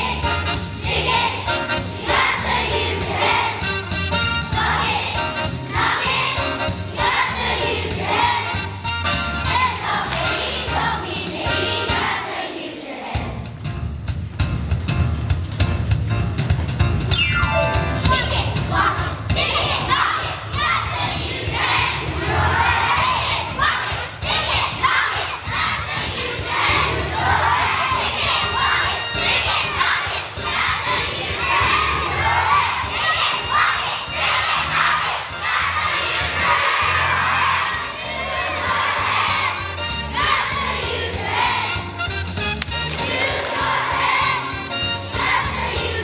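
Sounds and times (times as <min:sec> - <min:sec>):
children singing in unison: 0:00.0 - 0:03.7, 0:04.5 - 0:08.6, 0:09.5 - 0:13.4, 0:18.1 - 0:41.8, 0:43.0 - 0:46.0
low musical accompaniment: 0:00.0 - 0:46.0.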